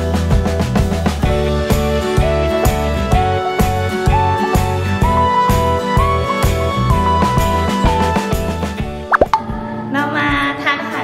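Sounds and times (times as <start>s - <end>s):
background music: 0.0s - 11.0s
rising bloop sound effects: 9.1s - 9.6s.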